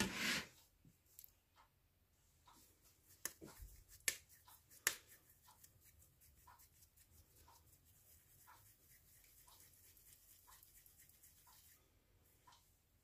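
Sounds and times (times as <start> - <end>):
hands shaping dough: 0.0 - 12.4.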